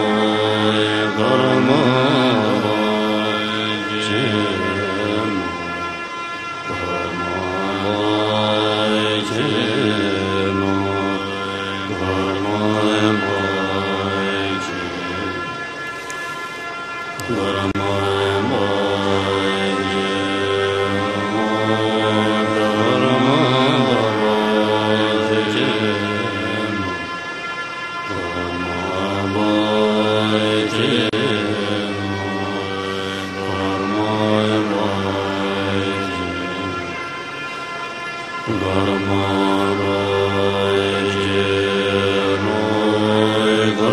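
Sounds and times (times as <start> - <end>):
chorus chanting in unison: 0.0 - 43.9.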